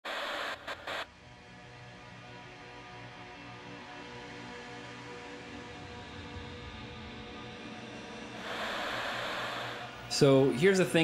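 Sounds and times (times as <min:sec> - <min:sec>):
static-like hiss: 0:00.0 - 0:01.1, 0:08.2 - 0:11.0.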